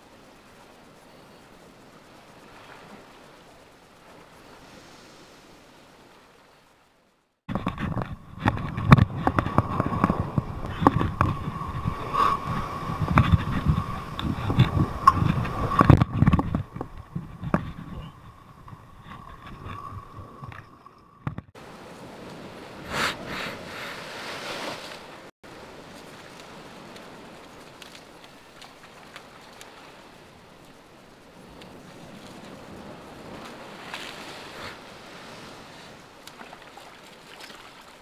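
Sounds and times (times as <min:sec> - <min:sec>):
thin steady whine: 0:07.0 - 0:22.7
surf splashing against rocks: 0:07.5 - 0:38.0.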